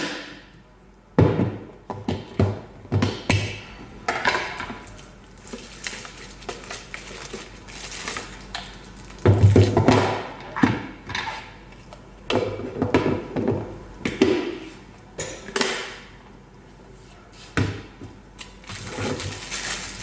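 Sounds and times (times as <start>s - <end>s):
plastic wrapping rustling: 4.8s - 9.8s, 18.4s - 20.0s
plastic containers knocking: 9.2s - 10.9s.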